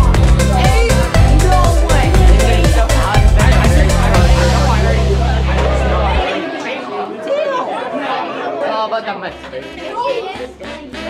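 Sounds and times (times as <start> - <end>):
music with steady bass: 0.0 - 6.2
voices chattering: 0.0 - 11.0.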